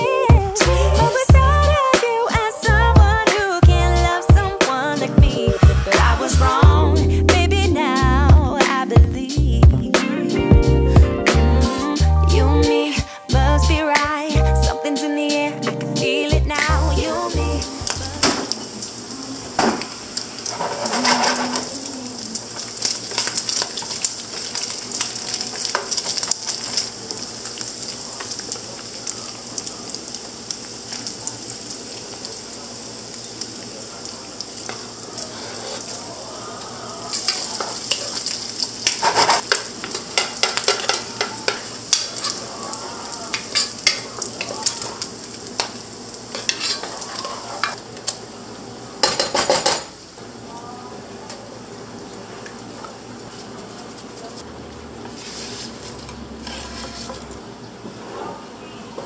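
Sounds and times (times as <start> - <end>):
bacon sizzling in a frying pan: 16.6 - 58.0
wooden spoon scraping a pot: 35.2 - 36.0, 46.3 - 47.8, 55.0 - 58.4.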